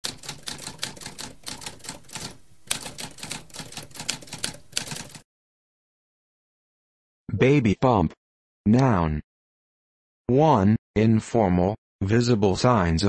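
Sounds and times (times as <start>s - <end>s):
typewriter keys striking: 0.0s - 5.2s.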